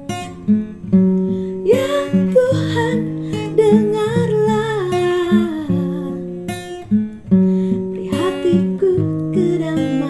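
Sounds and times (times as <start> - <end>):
acoustic guitar chords plucked: 0.0 - 10.0.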